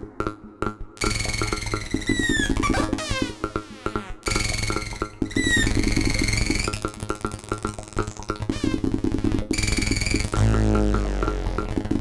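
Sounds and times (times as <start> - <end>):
rapid clicking synth pulses: 0.2 - 12.0.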